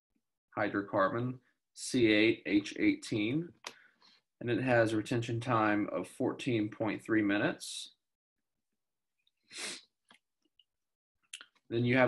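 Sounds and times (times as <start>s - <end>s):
man sharp intake of breath: 9.5s - 9.8s.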